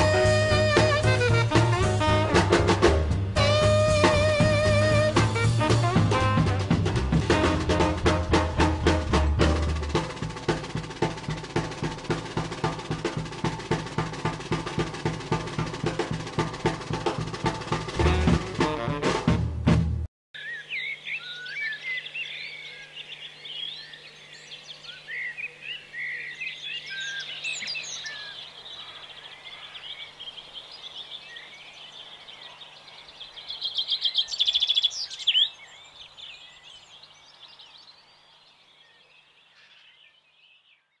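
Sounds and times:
songbirds singing and chirping: 0:20.4 - 0:41.0.

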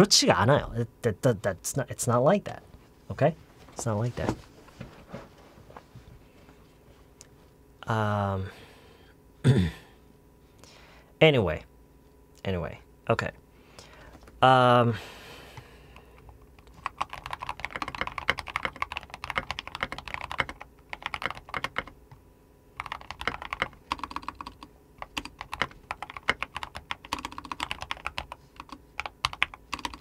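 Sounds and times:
keyboard typing: 0:16.2 - 0:22.0, 0:22.8 - 0:30.0.

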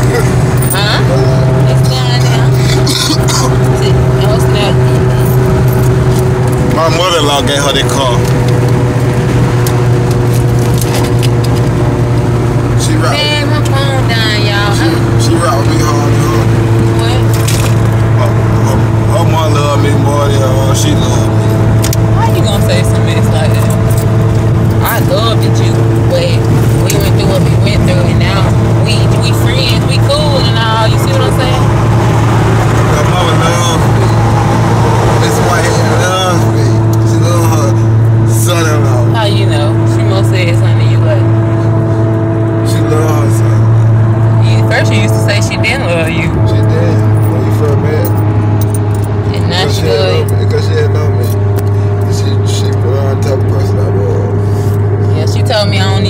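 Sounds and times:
car engine and road noise: 0:00.0 - 0:56.0
people conversing: 0:00.0 - 0:56.0.

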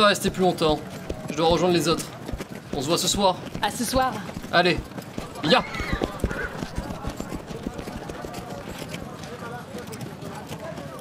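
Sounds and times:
horse hooves galloping: 0:00.0 - 0:11.0.

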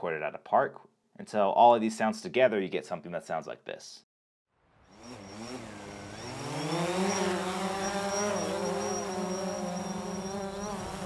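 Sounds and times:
drone propellers buzzing: 0:04.9 - 0:11.0
thin high steady tone: 0:07.0 - 0:11.0.

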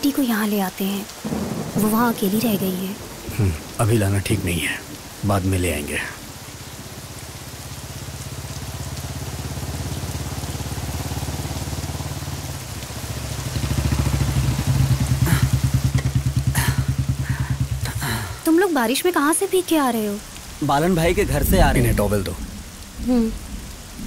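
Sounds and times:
steady rain: 0:00.0 - 0:24.0
motorcycle engine running: 0:06.8 - 0:18.4.

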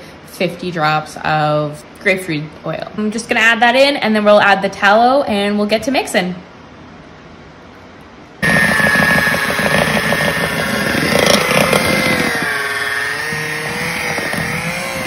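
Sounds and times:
electric hand mixer whining: 0:08.4 - 0:15.0.

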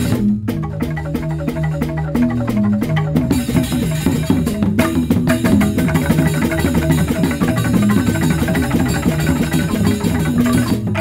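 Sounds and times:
percussion ensemble dance music: 0:00.0 - 0:11.0.

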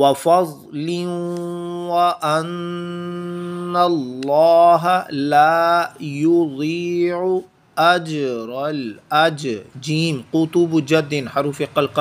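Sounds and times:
man chanting recitation: 0:00.0 - 0:12.0.

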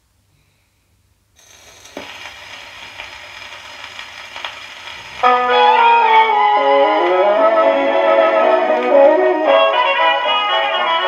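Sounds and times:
record surface hiss and crackle: 0:00.0 - 0:11.0.

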